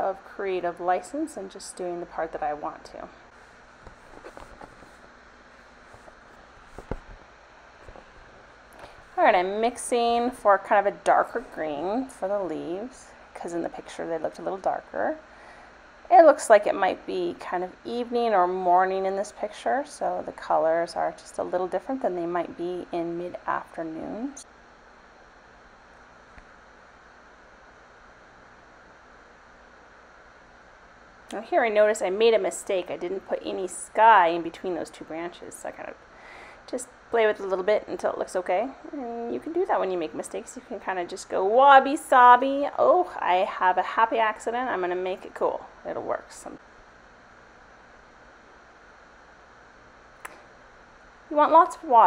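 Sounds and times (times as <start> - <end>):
background hiss: 0.0 - 52.0.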